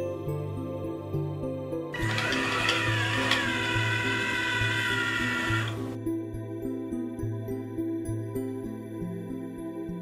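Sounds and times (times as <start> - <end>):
electric motors whirring: 2.0 - 6.0.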